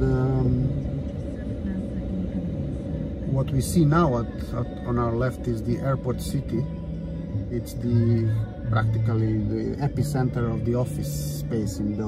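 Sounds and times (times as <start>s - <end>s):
car engine idling: 0.0s - 12.0s
surrounding traffic: 0.0s - 12.0s.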